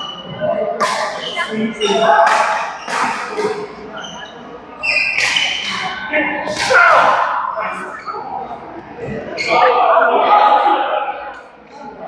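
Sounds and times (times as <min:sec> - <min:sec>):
shoes squeaking on court floor: 0:01.1 - 0:06.0
racket striking shuttlecock: 0:05.2 - 0:05.8.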